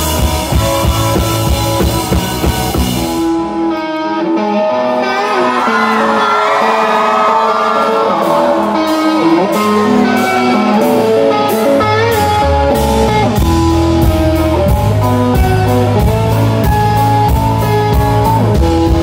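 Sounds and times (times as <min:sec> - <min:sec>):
drums: 0:00.0 - 0:19.0
electric guitar: 0:00.0 - 0:19.0
live rock band playing: 0:00.0 - 0:19.0.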